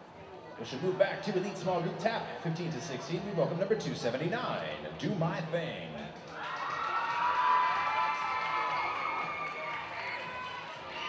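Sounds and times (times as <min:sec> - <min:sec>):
audience cheering and shouting: 0:06.3 - 0:11.0.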